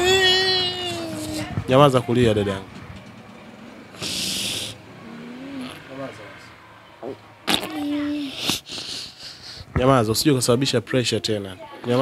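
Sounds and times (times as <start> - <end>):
shaky breath: 8.3 - 9.8.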